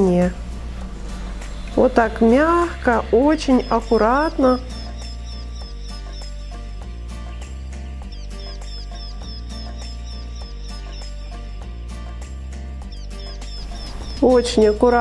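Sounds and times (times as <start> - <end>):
electronic music with steady beat: 0.0 - 12.1.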